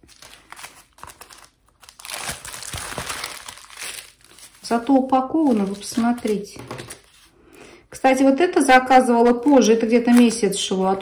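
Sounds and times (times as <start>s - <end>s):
plastic mailer and foam crinkling: 0.0s - 7.2s, 9.2s - 11.0s.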